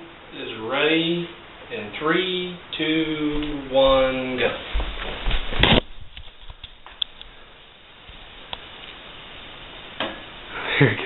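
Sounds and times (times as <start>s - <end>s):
faint steady hiss: 0.0s - 11.0s
rustling: 3.4s - 9.9s.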